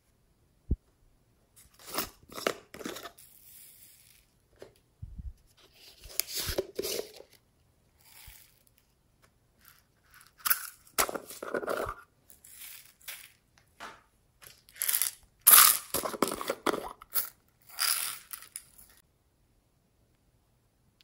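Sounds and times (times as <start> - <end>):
beads tipped into bowl: 14.4 - 19.0
plastic containers rustling: 15.9 - 17.0.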